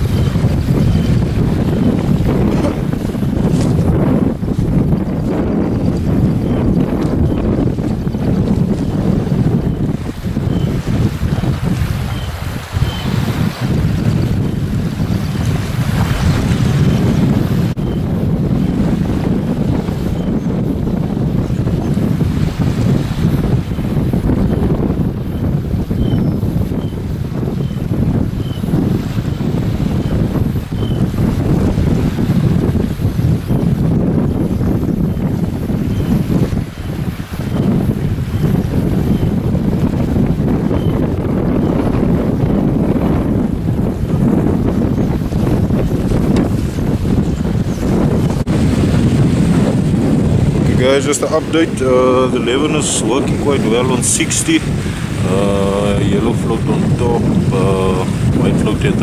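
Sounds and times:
wind buffeting microphone: 0:00.0 - 0:59.0
small waves lapping: 0:50.6 - 0:59.0.

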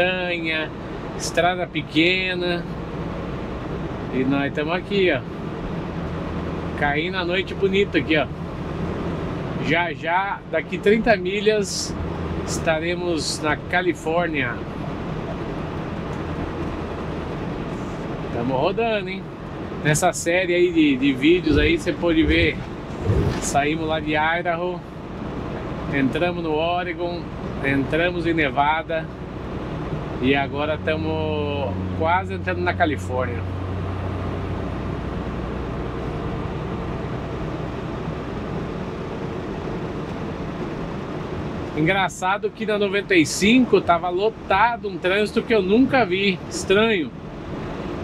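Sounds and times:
road and wind noise: 0:00.0 - 0:48.0
truck engine droning: 0:00.0 - 0:48.0.

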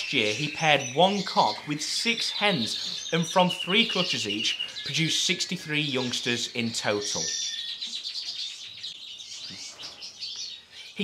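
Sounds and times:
small birds chirping: 0:00.0 - 0:11.0.

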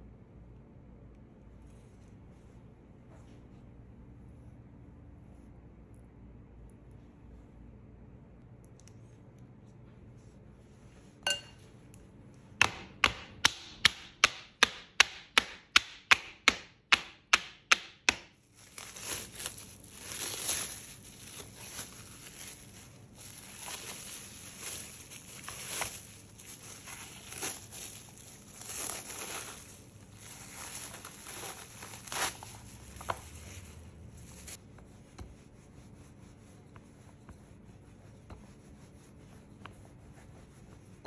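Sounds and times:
cling film crinkling: 0:18.5 - 0:34.6.

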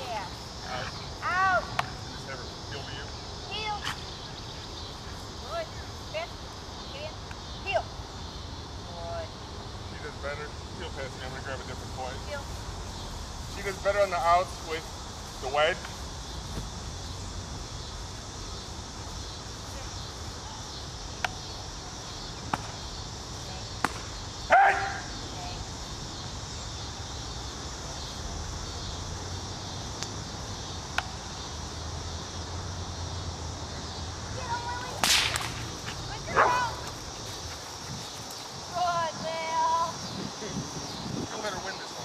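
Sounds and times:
sharp whip crack: 0:23.8 - 0:24.1, 0:35.0 - 0:36.0
sharp snaps: 0:23.8 - 0:24.2, 0:30.0 - 0:30.2, 0:35.0 - 0:36.0
dog barking: 0:24.5 - 0:25.1, 0:36.3 - 0:36.7.

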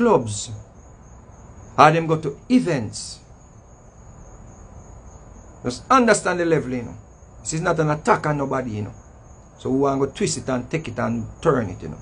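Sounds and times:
low background hiss: 0:00.0 - 0:12.0.

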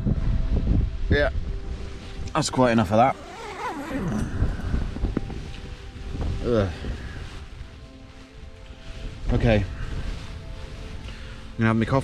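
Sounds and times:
wind rumble on microphone: 0:00.0 - 0:12.0
tent zip being pulled: 0:02.8 - 0:05.6.

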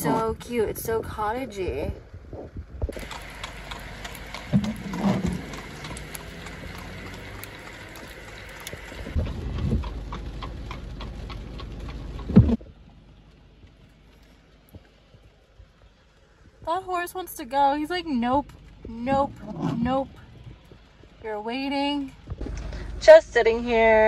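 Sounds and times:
horse hooves clip-clopping: 0:02.3 - 0:17.3, 0:18.2 - 0:22.7
road hiss: 0:03.0 - 0:09.2
steady rain: 0:03.0 - 0:09.2, 0:12.8 - 0:16.7.

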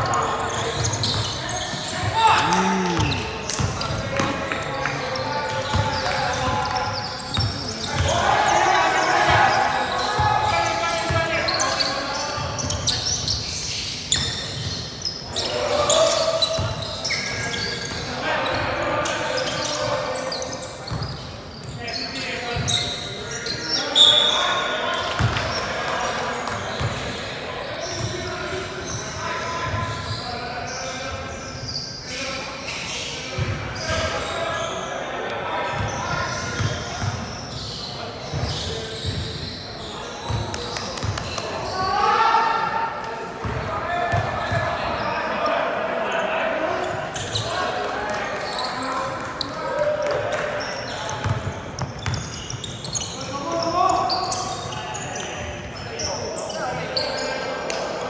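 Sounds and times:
players calling out: 0:00.4 - 0:06.1.

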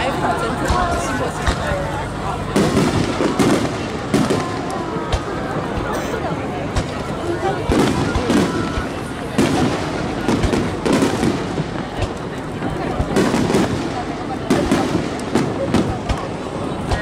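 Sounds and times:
fireworks bursting: 0:00.0 - 0:17.0
spectators' voices: 0:00.0 - 0:17.0.

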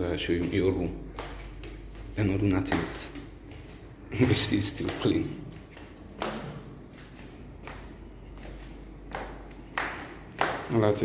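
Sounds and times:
footsteps on tiled floor: 0:00.0 - 0:11.0.

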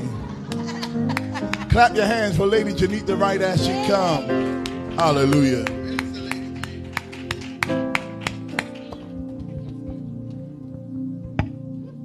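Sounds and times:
keyboard and bass chords: 0:00.0 - 0:12.0
hand claps: 0:00.5 - 0:01.7, 0:04.5 - 0:10.4.

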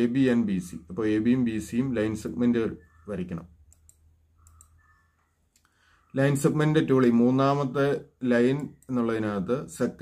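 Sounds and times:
faint clicks: 0:03.7 - 0:04.8.

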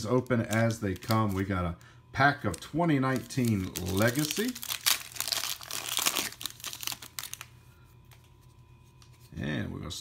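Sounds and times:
foil wrapper crackling: 0:00.0 - 0:01.7, 0:02.4 - 0:07.5.

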